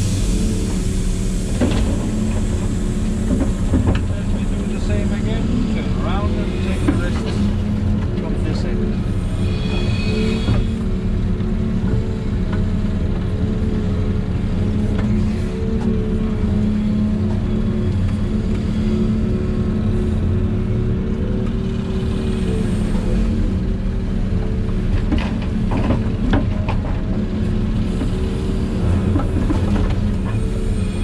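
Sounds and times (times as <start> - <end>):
excavator engine and hydraulics: 0.0 - 31.0.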